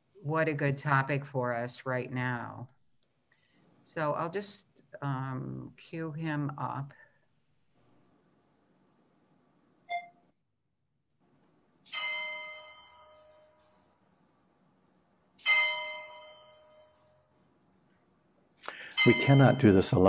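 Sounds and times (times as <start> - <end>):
bell ringing: 11.9 - 13.8, 15.4 - 17.2, 18.8 - 20.0.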